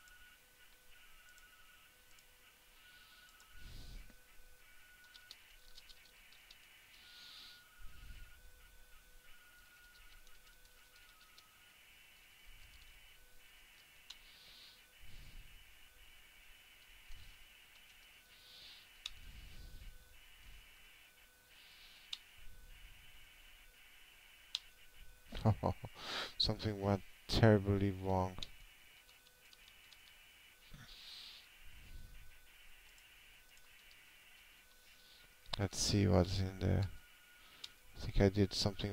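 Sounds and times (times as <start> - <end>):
faint keyboard typing: 0.0 - 2.3, 2.9 - 3.6, 4.7 - 7.0, 9.2 - 14.3, 16.7 - 18.2, 28.4 - 30.4, 32.5 - 34.8
faint electronic whine: 0.0 - 38.9.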